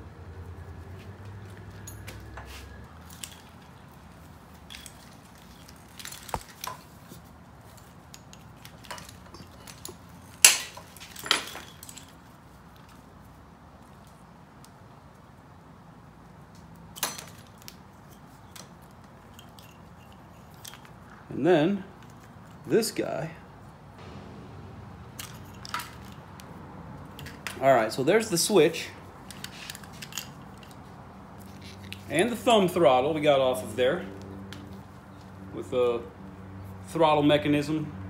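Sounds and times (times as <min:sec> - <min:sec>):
wires rattling: 0:01.4 - 0:13.1, 0:24.0 - 0:33.6.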